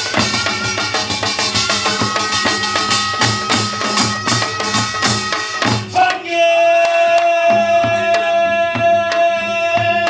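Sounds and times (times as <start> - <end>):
held high tone: 0.0 - 5.9
drums beating fast rhythm: 0.0 - 10.0.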